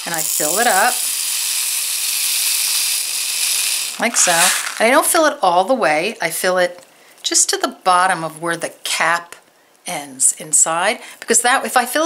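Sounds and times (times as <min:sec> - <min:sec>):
glass beads pouring into plastic tube: 0:00.0 - 0:05.2.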